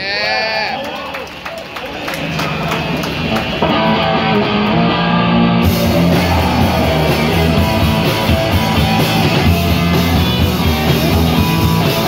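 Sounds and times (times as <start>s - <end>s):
electric guitars and bass: 2.1s - 12.0s
punk band playing live: 2.4s - 12.0s
drums and cymbal hits: 5.6s - 12.0s.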